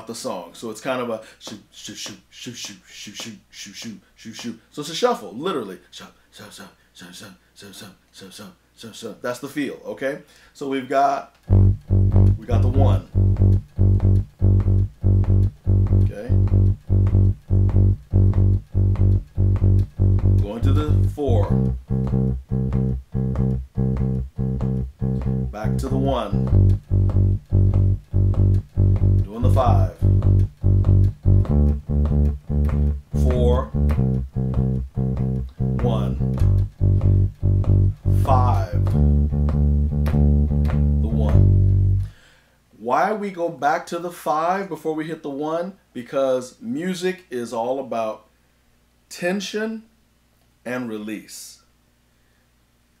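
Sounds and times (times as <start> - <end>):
electric bass playing blues shuffle: 11.5 - 42.2.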